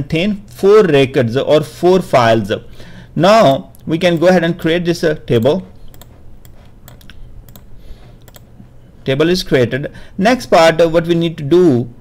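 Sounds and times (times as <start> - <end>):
faint low hum: 0.0 - 12.0
keyboard and mouse clicks: 5.4 - 8.7.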